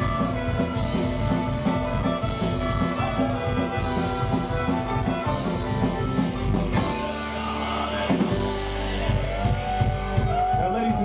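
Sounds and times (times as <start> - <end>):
live folk-punk band playing: 0.0 - 11.0.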